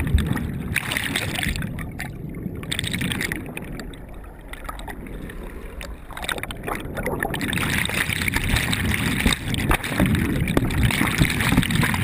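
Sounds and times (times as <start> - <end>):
muffled underwater bubbling: 0.0 - 12.0.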